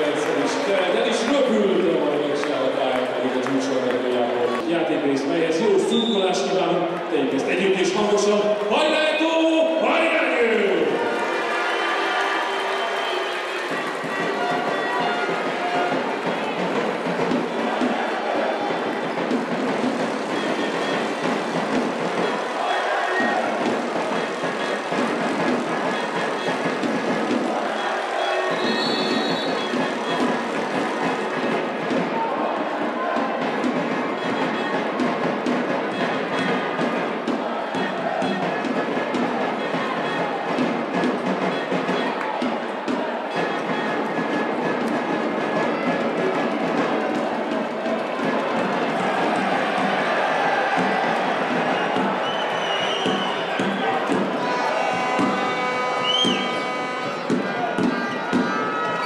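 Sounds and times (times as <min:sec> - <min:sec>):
crowd noise: 0:00.0 - 0:59.0
fans chanting and singing: 0:00.0 - 0:59.0.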